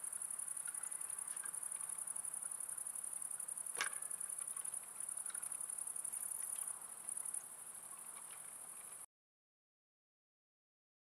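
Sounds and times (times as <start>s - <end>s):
crickets chirping: 0.0s - 9.1s
faint clicks: 3.4s - 9.1s.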